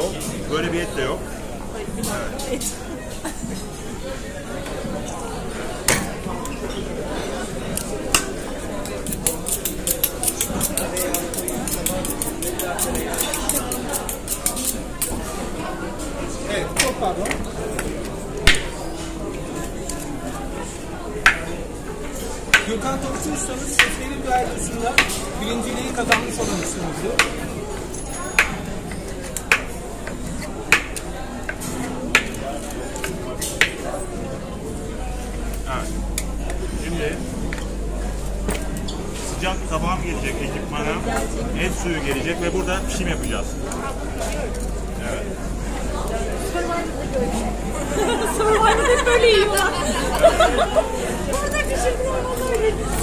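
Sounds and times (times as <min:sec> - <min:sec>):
crowd chatter: 0:00.0 - 0:53.0
knife on honing rod: 0:09.0 - 0:14.8.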